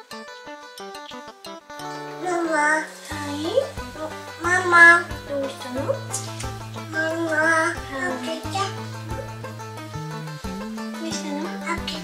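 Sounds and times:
light background music: 0.0s - 12.0s
toddler vocalizing: 6.9s - 9.3s.

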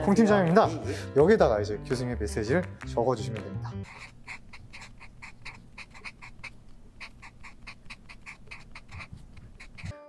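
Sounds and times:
marker squeaking on paper: 3.8s - 10.0s.

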